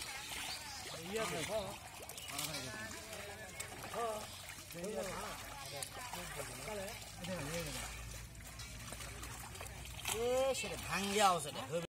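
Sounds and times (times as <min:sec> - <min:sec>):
muddy water trickling and sloshing: 0:00.0 - 0:11.9
men chattering: 0:00.9 - 0:08.4.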